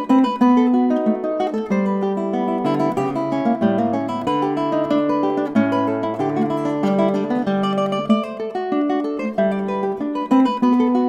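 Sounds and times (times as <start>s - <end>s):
fingerpicked classical guitar: 0.0s - 11.0s.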